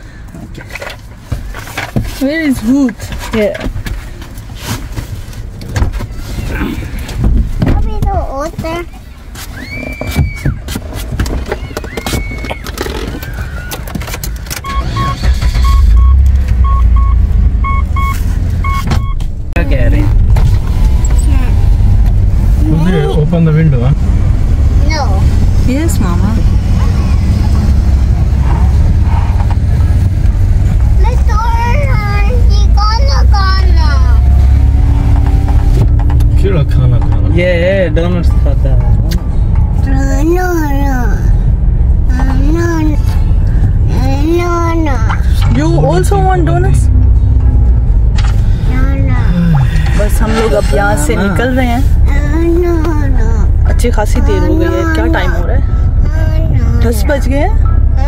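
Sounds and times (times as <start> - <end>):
engine and road rumble: 0.0 - 58.0
electronic warning chime beeping: 14.6 - 19.2
voices: 24.8 - 27.8, 48.7 - 58.0.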